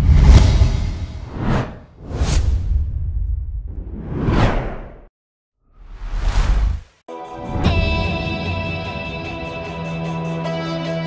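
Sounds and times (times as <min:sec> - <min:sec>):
deep rumble: 0:00.0 - 0:04.2
whoosh swishes: 0:00.0 - 0:05.1, 0:05.9 - 0:07.0.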